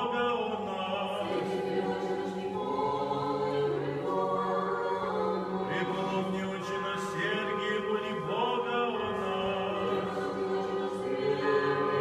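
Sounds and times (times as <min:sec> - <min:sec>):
choir singing a chant: 0:00.0 - 0:12.0.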